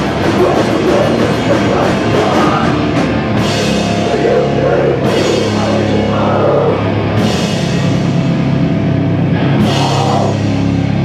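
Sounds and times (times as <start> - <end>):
punk band playing live: 0.0 - 11.0.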